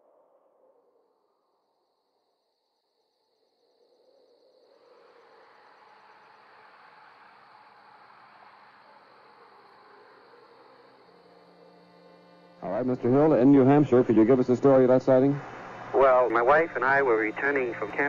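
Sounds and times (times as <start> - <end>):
high cricket-like trill: 3.4 - 18.0.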